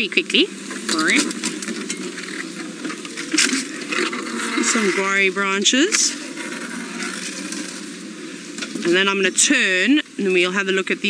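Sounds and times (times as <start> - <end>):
leaves and branches brushing vehicle: 0.0 - 11.0.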